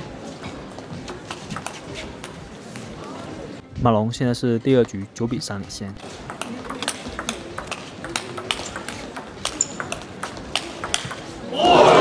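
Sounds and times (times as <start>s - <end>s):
table tennis ball clicking: 6.0s - 11.3s.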